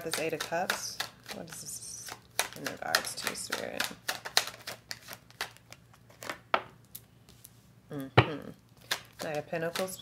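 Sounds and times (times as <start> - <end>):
cards shuffled by hand: 0.3 - 6.4.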